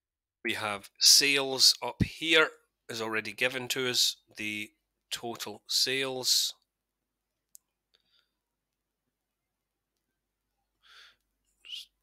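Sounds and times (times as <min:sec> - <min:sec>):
breaths close to microphone: 0:10.8 - 0:11.3.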